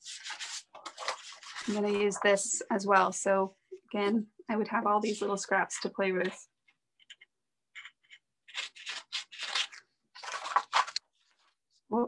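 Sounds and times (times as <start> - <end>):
paper rustling: 0.0 - 2.3, 8.5 - 11.7.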